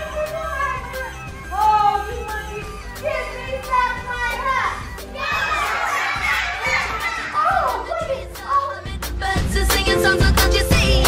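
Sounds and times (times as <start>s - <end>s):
children shouting and chattering: 0.0s - 8.9s
children singing: 5.1s - 11.0s.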